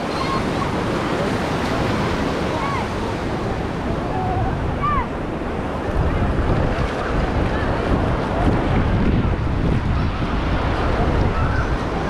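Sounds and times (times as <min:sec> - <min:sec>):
beach crowd voices: 0:00.0 - 0:12.0
surf washing on sandy shore: 0:00.0 - 0:12.0
wind buffeting microphone: 0:00.0 - 0:12.0.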